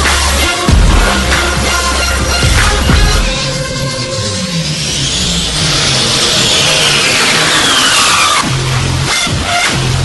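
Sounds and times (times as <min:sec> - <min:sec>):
deep bass line: 0:00.0 - 0:06.9, 0:08.4 - 0:10.0
hissing noise sweep: 0:02.2 - 0:10.0.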